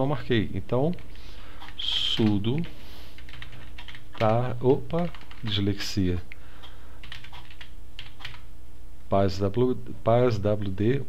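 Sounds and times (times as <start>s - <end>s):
steady low hum: 0.0s - 11.0s
computer keyboard typing: 1.6s - 5.7s, 6.6s - 8.4s.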